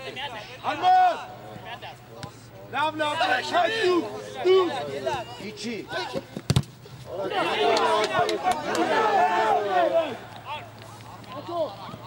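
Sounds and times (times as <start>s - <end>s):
men shouting: 2.8s - 6.2s, 7.1s - 10.3s.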